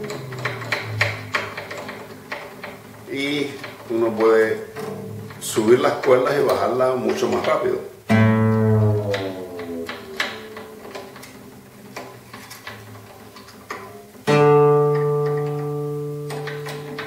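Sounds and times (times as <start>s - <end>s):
guitar string ringing: 0.0s - 17.0s
tuning peg clicks: 4.8s - 12.2s.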